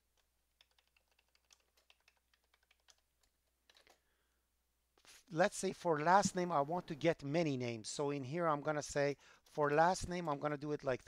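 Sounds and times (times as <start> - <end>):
keyboard typing: 0.0 - 4.0.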